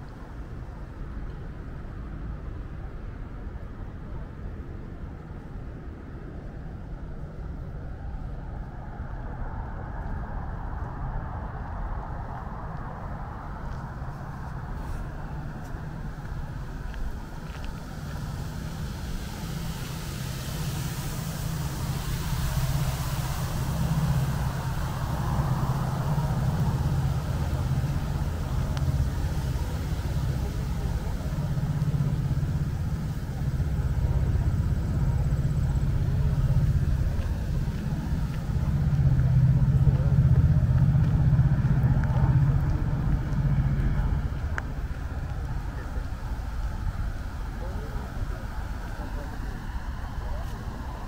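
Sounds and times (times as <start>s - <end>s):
distant road traffic rumble: 0.0s - 51.0s.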